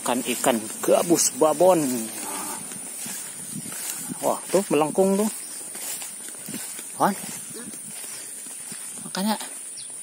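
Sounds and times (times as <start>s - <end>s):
footsteps through tall grass: 0.0s - 10.0s.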